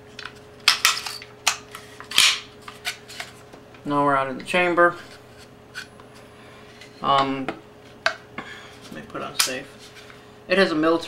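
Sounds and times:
handling rubbing and shuffling: 1.8 - 10.3.

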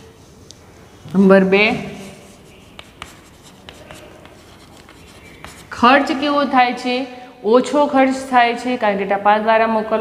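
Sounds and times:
chalk scraping on blackboard: 1.8 - 6.3
chalk tapping on board: 2.0 - 6.2.

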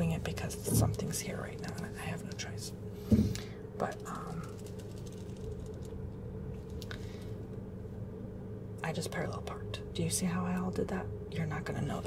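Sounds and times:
car engine hum from inside: 0.0 - 12.0.

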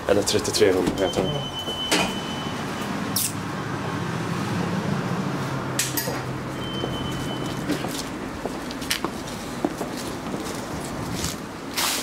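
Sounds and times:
high steady beep: 1.0 - 3.0, 6.6 - 7.6.

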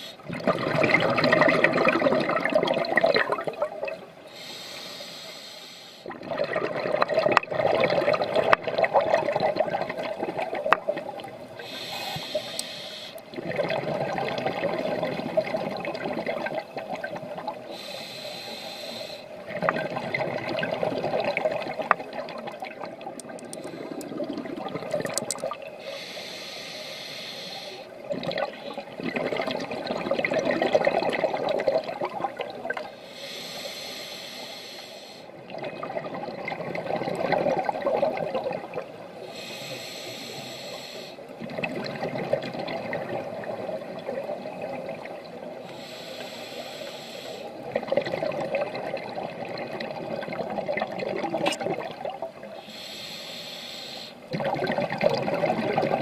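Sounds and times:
exhaled air bubbling: 0.0 - 4.5, 6.0 - 26.2, 27.2 - 33.0, 35.0 - 53.2, 54.0 - 56.0
regulator inhalation hiss: 4.3 - 6.1, 11.6 - 13.3, 17.6 - 19.4, 25.8 - 28.0, 33.0 - 35.3, 39.2 - 41.3, 45.6 - 47.6, 52.6 - 54.3.

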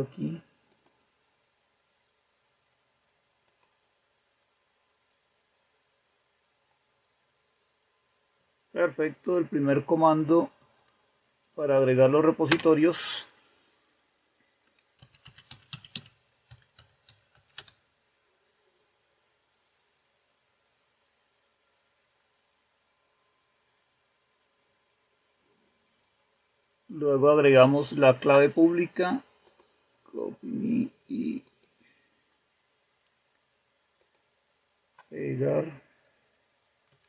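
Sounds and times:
computer mouse click: 0.7 - 1.0, 3.4 - 3.8, 14.6 - 17.8, 29.4 - 29.7, 34.0 - 34.3
keyboard key clicks: 12.5 - 12.7.

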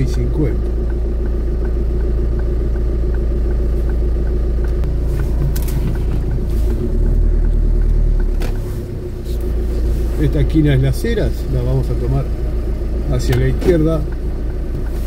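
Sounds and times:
car engine idling and revving: 0.0 - 15.0
turn signal ticking: 0.0 - 15.0.

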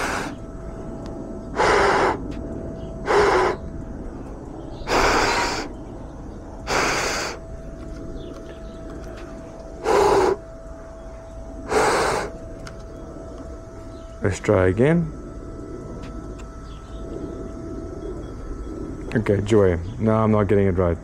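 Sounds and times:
person huffing breath: 0.0 - 0.4, 1.6 - 2.2, 3.0 - 3.6, 4.9 - 5.7, 6.7 - 7.5, 9.8 - 10.4, 11.6 - 12.4.

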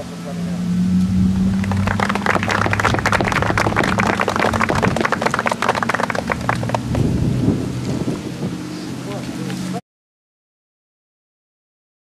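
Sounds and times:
steady low hum: 0.0 - 9.8
small crowd clapping: 1.4 - 7.1.

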